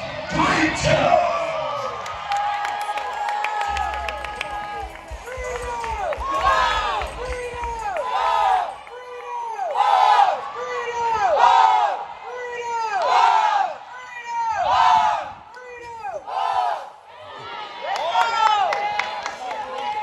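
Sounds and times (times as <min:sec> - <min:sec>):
high voices chanting a cheer: 0:00.0 - 0:20.0.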